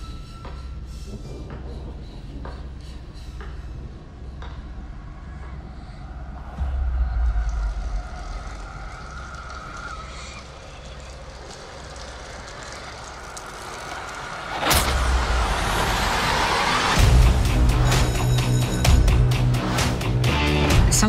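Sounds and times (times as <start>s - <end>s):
eerie sustained tone: 0.0s - 19.7s
deep low rumble: 4.8s - 19.7s.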